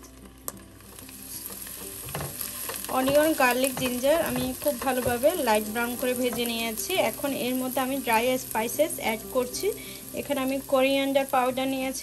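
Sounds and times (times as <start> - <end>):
onions frying in oil: 0.0 - 12.0.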